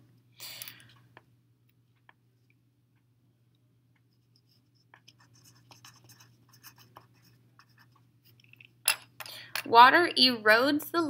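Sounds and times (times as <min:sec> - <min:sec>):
faint steady hum: 0:00.0 - 0:11.0
pencil scratching on paper: 0:04.1 - 0:08.0.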